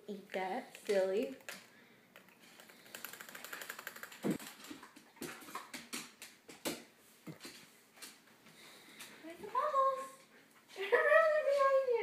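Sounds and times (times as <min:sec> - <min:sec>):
puppy claws clicking on wooden floor: 0:00.7 - 0:06.8.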